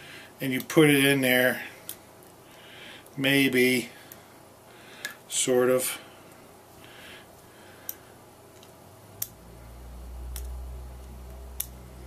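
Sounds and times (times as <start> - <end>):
low hum: 6.0 - 12.0.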